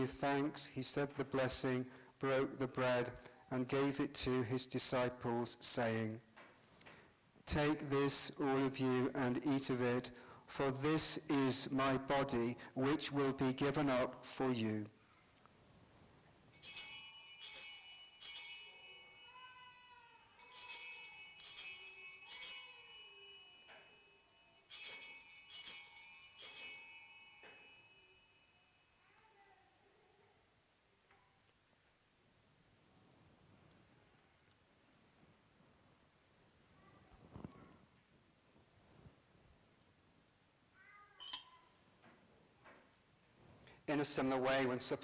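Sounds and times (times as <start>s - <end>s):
altar bells jingling: 16.5s - 29.0s, 41.2s - 41.9s.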